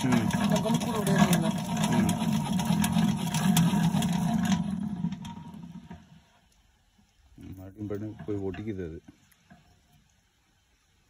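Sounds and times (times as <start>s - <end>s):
honey extractor whirring and clicking: 0.0s - 10.3s.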